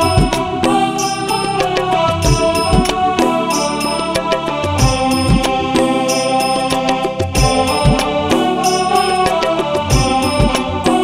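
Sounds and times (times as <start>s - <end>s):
sustained instrumental tones: 0.0s - 11.0s.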